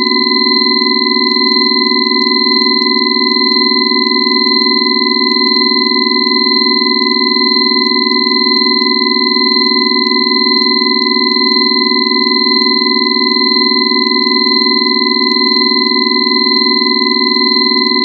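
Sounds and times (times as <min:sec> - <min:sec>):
synthesized sine tone drone: 0:00.0 - 0:18.0.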